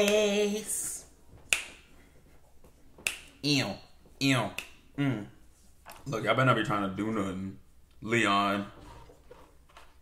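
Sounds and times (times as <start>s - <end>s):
sharp finger snaps: 1.5s - 1.9s, 3.0s - 3.4s, 4.5s - 4.8s.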